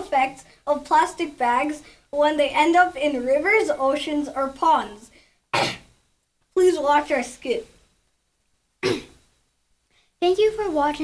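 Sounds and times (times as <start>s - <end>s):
child clearing throat: 5.5s - 5.9s, 8.8s - 9.2s.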